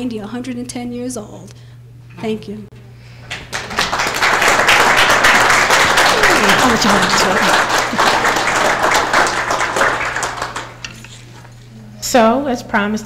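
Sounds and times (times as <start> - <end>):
audience applauding: 3.3 - 10.9
person laughing: 6.1 - 8.4.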